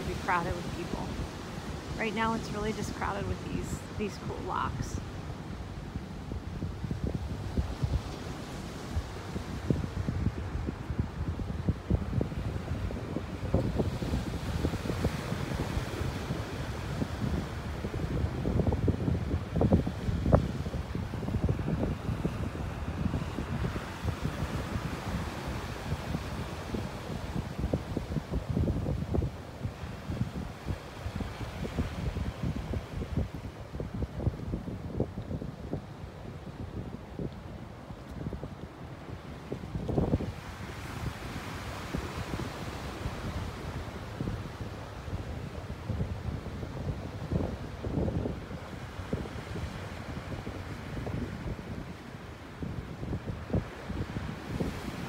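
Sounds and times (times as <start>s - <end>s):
ocean surf: 0.0s - 55.0s
wind buffeting microphone: 0.0s - 55.0s.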